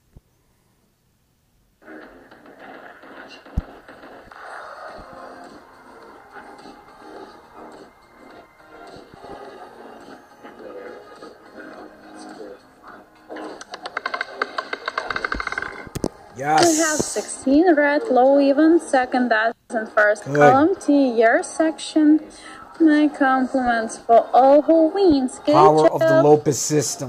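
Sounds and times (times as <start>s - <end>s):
background music: 1.8s - 27.0s
roulette ball rattling: 13.6s - 16.1s.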